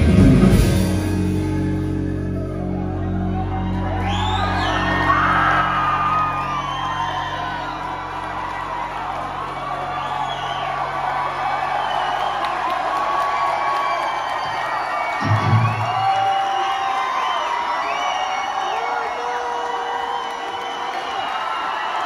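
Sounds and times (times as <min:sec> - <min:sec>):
live rock band: 0:00.0 - 0:10.2, 0:15.0 - 0:16.1
crowd cheering and whooping: 0:00.0 - 0:22.0.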